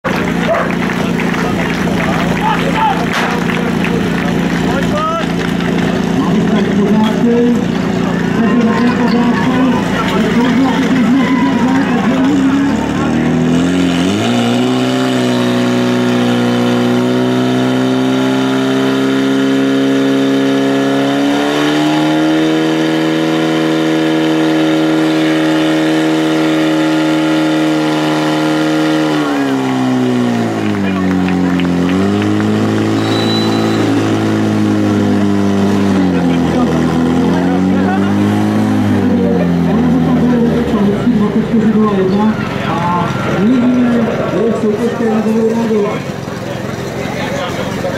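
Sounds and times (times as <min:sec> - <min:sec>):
pump engine revving: 0:00.0 - 0:47.9.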